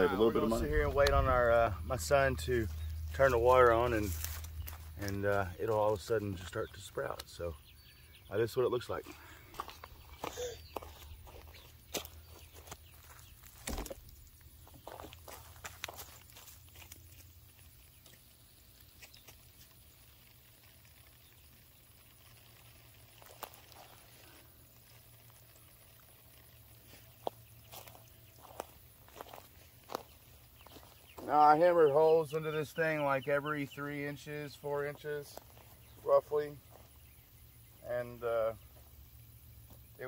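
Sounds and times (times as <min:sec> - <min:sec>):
footsteps on wood-chip mulch: 0:00.0 - 0:07.6, 0:08.3 - 0:19.9, 0:22.3 - 0:40.0.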